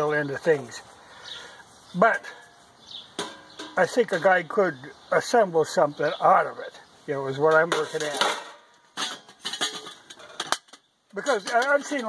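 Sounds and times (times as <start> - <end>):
metal camp pots knocking together: 3.1 - 5.3, 7.3 - 12.0.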